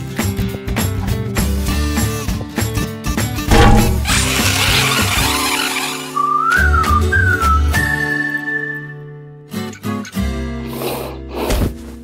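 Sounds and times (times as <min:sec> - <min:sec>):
rising and falling whistle: 0:06.0 - 0:09.0.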